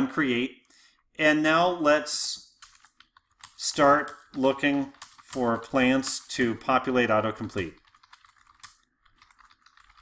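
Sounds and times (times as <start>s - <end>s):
typing on computer keyboard: 2.6s - 10.0s.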